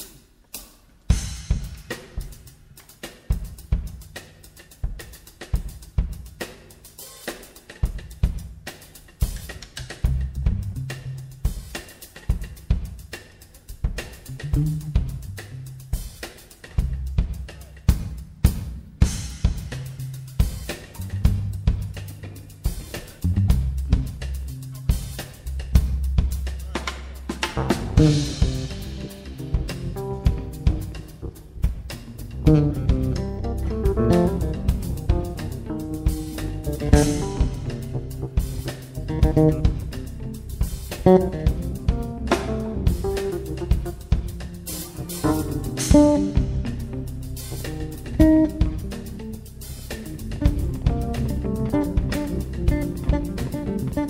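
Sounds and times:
drum kit groove: 0:00.0 - 0:54.0
electric bass line: 0:14.3 - 0:15.8, 0:21.0 - 0:22.2, 0:23.2 - 0:26.7, 0:27.4 - 0:54.0
higher instrument notes: 0:27.4 - 0:54.0.

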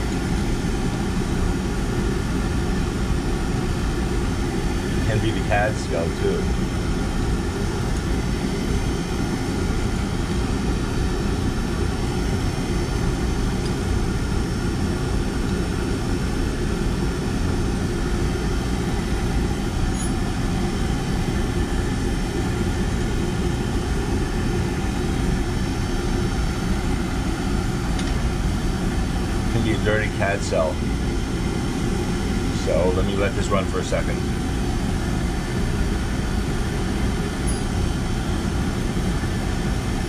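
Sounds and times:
oil burner low roar: 0:00.0 - 0:40.0
steady hum: 0:00.0 - 0:40.0.

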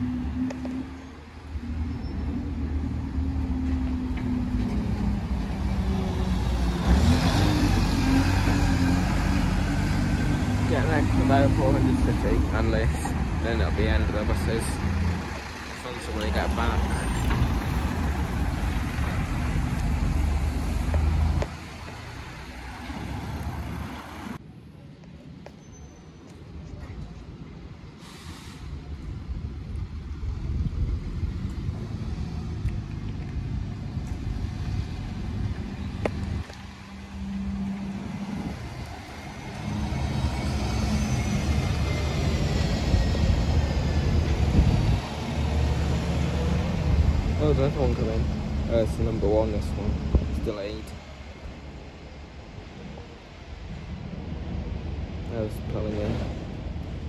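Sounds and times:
bus engine rumble: 0:00.0 - 0:24.4, 0:26.4 - 0:57.0
coach diesel engine passing: 0:00.0 - 0:24.4, 0:30.2 - 0:53.2
street traffic: 0:00.0 - 0:57.0.

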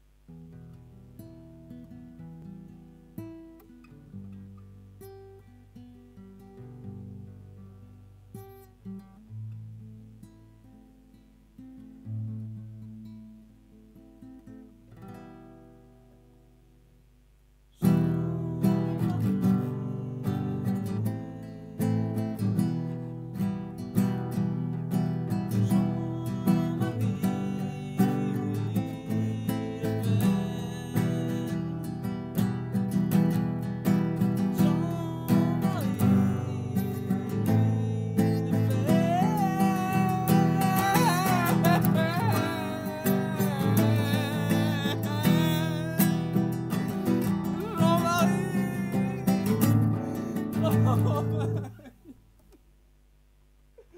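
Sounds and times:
classical guitar strumming: 0:00.0 - 0:17.1, 0:17.7 - 0:51.9
man singing: 0:17.8 - 0:23.1, 0:25.4 - 0:32.5, 0:34.0 - 0:52.0.

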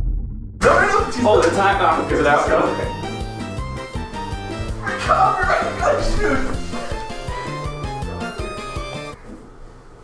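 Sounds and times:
person shouting: 0:00.6 - 0:01.5, 0:04.6 - 0:07.6
background music with steady beat: 0:00.6 - 0:09.2.

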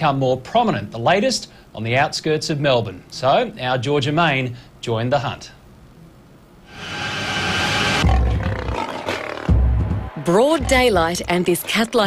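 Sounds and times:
rising rush of sound: 0:06.6 - 0:10.3
dramatic music: 0:06.7 - 0:11.4
deep booms: 0:07.3 - 0:08.9
big cat roaring: 0:08.0 - 0:09.6.

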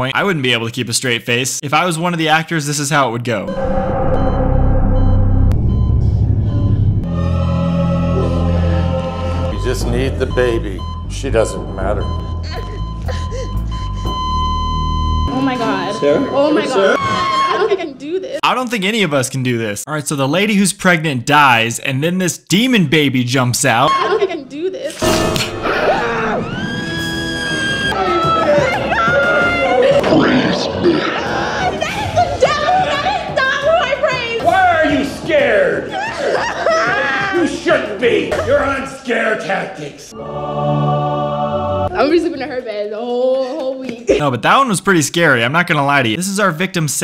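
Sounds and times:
faint held higher tones: 0:03.5 - 0:07.1
low rumbling drone: 0:03.5 - 0:10.2
dramatic background music: 0:03.5 - 0:16.0
woman screaming: 0:16.4 - 0:18.1, 0:23.9 - 0:25.0, 0:25.6 - 0:34.6.

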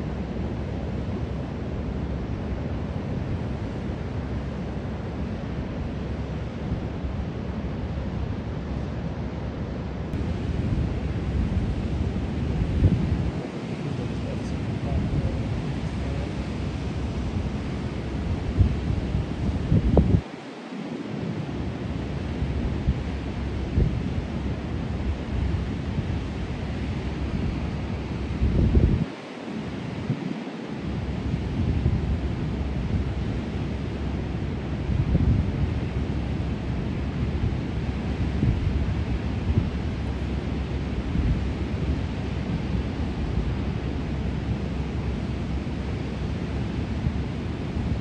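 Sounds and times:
wind buffeting microphone: 0:10.1 - 0:48.0
ocean surf breaking: 0:10.2 - 0:34.9.

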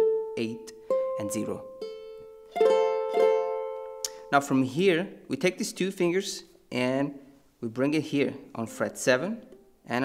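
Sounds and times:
ukulele chords ringing: 0:00.0 - 0:04.8.

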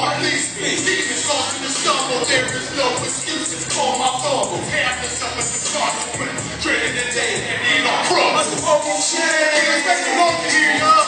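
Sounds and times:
hip hop beat: 0:00.0 - 0:11.0.

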